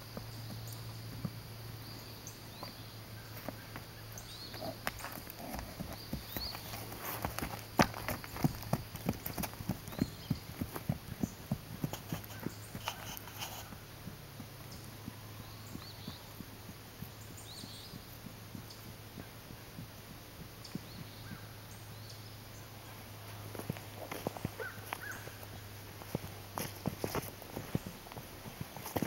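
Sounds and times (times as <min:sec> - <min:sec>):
horse hooves on dirt: 0:00.0 - 0:29.0.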